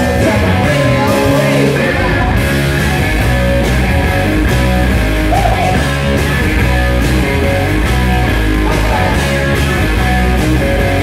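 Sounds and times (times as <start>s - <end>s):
electric bass guitar: 0.0s - 11.0s
rock band playing loud: 0.0s - 11.0s.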